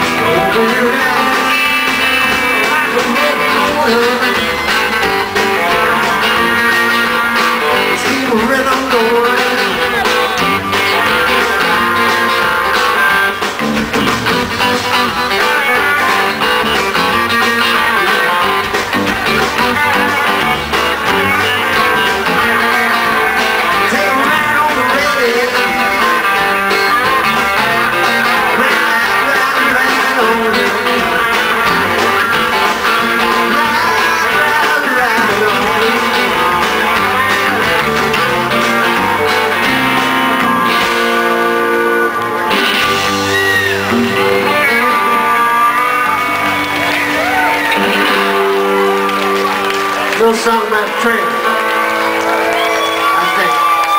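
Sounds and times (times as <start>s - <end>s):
drums: 0.0s - 53.9s
electric bass: 0.0s - 53.9s
electric guitars: 0.0s - 53.9s.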